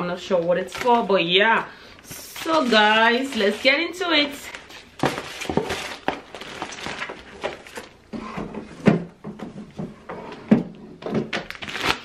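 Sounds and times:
paper and plastic rustling: 0.3 - 8.0
items knocking against cardboard box: 5.0 - 11.5.

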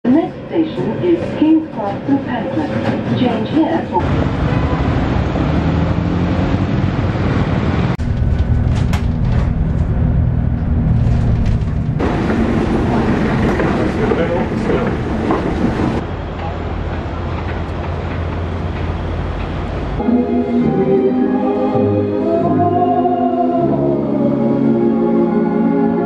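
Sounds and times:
low traffic rumble: 4.0 - 20.0.

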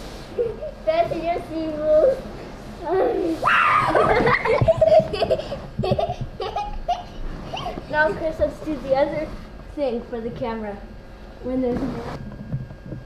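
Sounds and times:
children laughing and crying out: 2.8 - 8.3.

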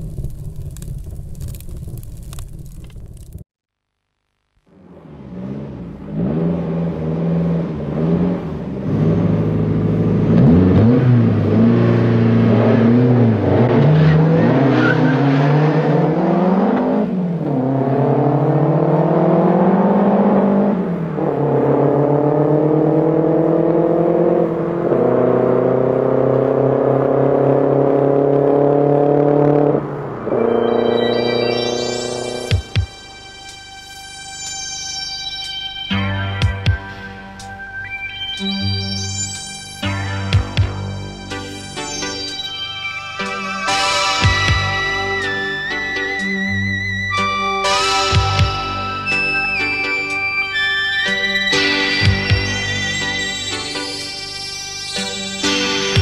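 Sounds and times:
petrol engine revving and accelerating: 4.7 - 34.8.

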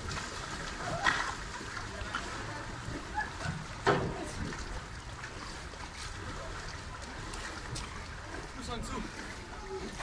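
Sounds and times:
paddle splashes: 0.0 - 10.0
running river water: 0.0 - 10.0.

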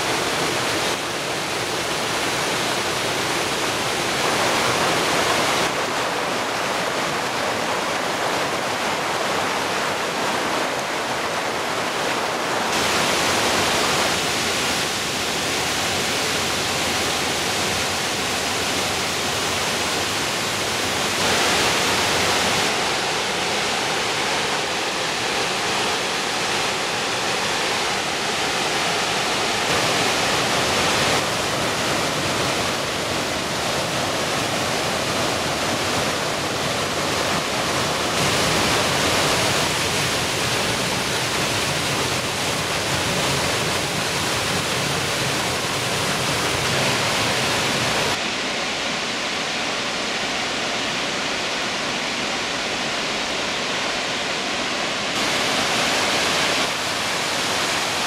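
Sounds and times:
water rushing over rocks: 0.0 - 58.0.

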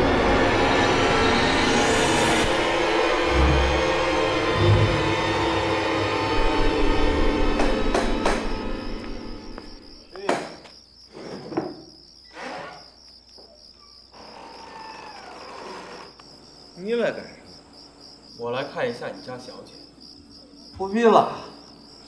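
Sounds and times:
crickets chirping: 0.8 - 22.0
gate creaking open: 2.5 - 10.5, 12.3 - 12.9.

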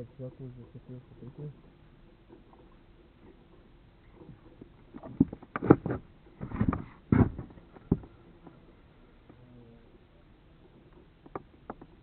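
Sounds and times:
dull knocks: 4.9 - 8.1.

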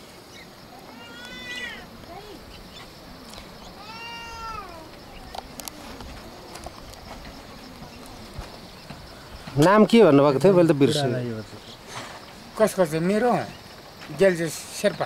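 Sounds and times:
drawn-out animal cries: 0.9 - 2.9, 3.7 - 5.0.

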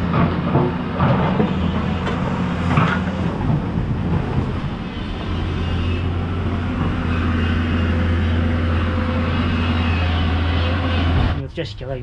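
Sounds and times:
excavator diesel engine droning: 0.0 - 12.0.

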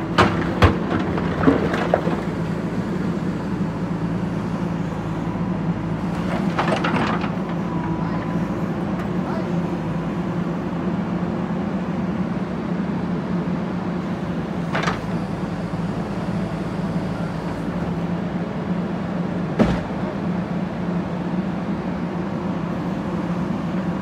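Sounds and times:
diesel engine running under load: 0.0 - 24.0.

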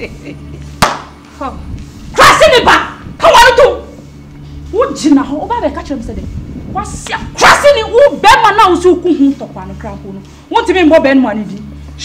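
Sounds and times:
woman shouting: 1.4 - 4.0, 6.8 - 9.5.

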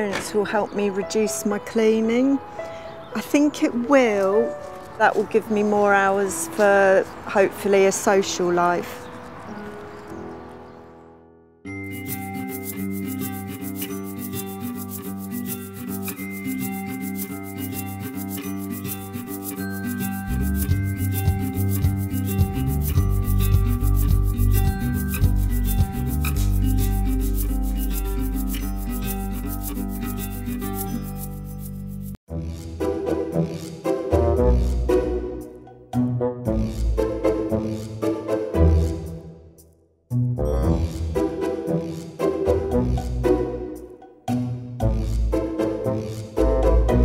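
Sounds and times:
background music with ticking rhythm: 11.8 - 47.0
deep bass: 20.3 - 27.8, 40.1 - 41.3.

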